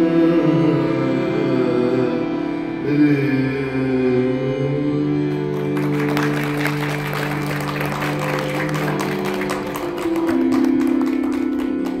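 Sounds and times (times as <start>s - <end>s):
tanpura drone: 0.0s - 12.0s
audience applause: 5.4s - 12.0s.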